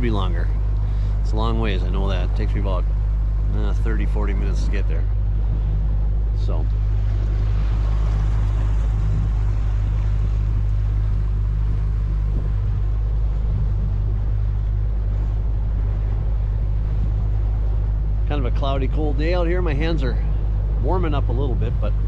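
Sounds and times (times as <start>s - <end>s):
outboard motor running: 0.0s - 22.0s
water rushing along boat hull: 0.0s - 22.0s.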